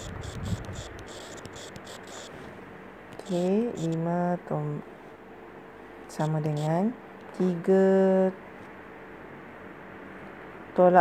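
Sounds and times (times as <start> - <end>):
handwriting taps on touchscreen: 0.0 - 2.3, 3.1 - 4.0
cricket chirping: 0.0 - 2.4, 3.2 - 4.0.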